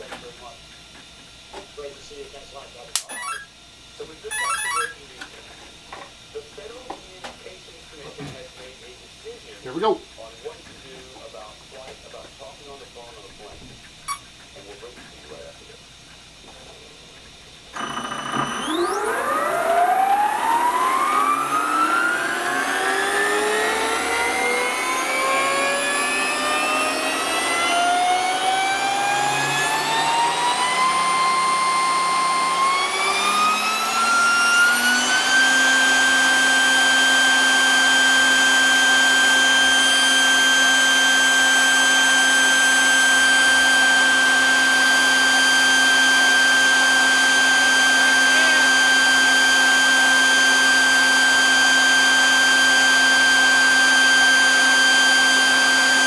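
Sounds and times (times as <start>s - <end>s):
motor whine rising in pitch: 3.0s - 3.5s, 4.3s - 5.0s, 17.7s - 56.0s.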